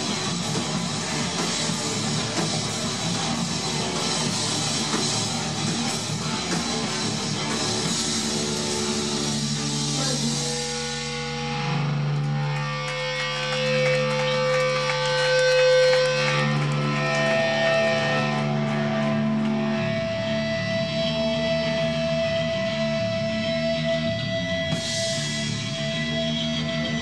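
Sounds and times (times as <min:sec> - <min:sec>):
drumming: 0:00.0 - 0:11.5
electric guitars ringing notes: 0:00.0 - 0:27.0.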